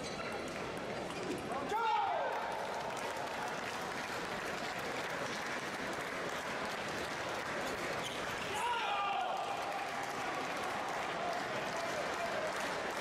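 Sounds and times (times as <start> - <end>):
spectators applauding: 2.1 - 13.0.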